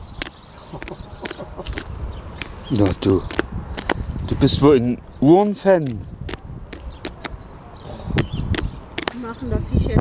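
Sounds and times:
beak tapping on watch and mesh: 0:05.4 - 0:07.4, 0:08.2 - 0:09.2.

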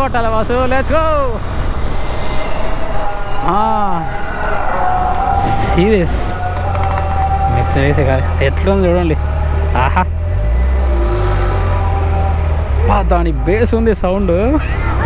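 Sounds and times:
motorcycle engine and road noise: 0:00.0 - 0:15.0.

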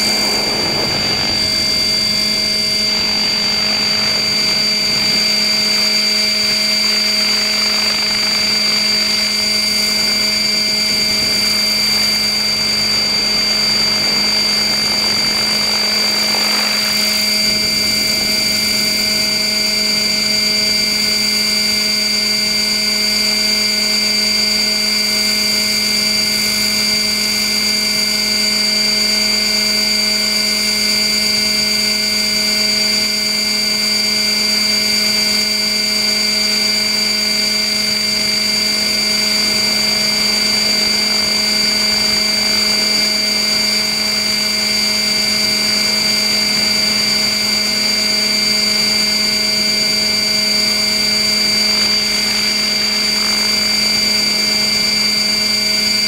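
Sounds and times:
model helicopter motor whine: 0:00.0 - 0:56.0.

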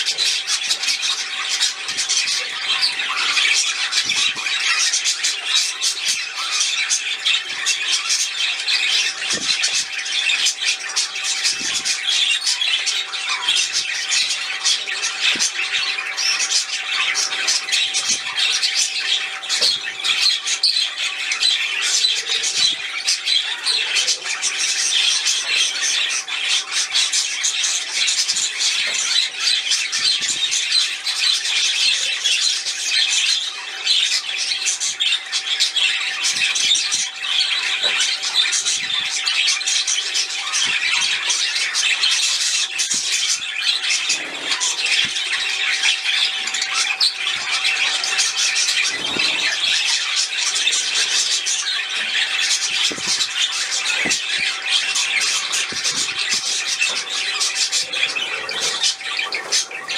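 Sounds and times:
birds chattering and squawking: 0:00.0 - 0:59.9.

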